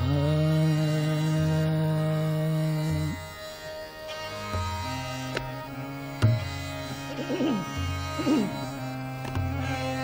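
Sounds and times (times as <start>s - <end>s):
man singing long note: 0.0s - 3.2s
classical accompaniment: 2.3s - 10.0s.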